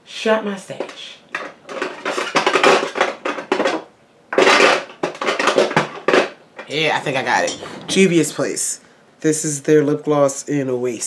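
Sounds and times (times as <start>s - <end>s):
makeup tubes clattering and clinking: 0.7s - 7.9s.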